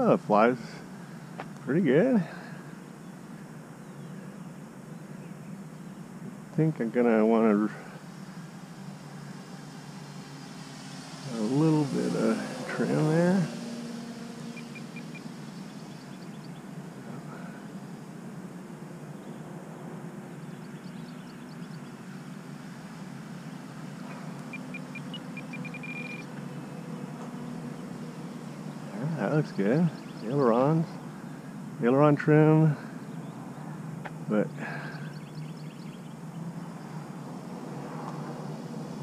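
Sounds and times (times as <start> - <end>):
short high beeps: 24.5 - 26.3.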